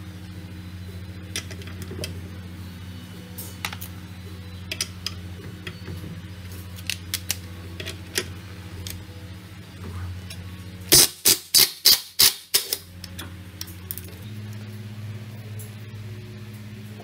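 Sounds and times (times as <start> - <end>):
impact wrench bursts: 10.9 - 12.8.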